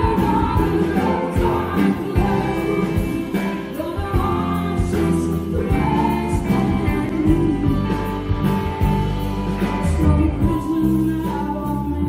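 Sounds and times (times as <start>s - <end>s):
drums beat: 0.0s - 10.7s
bass guitar: 0.0s - 12.0s
electric guitar: 0.0s - 12.0s
woman singing lead vocal: 0.0s - 12.0s.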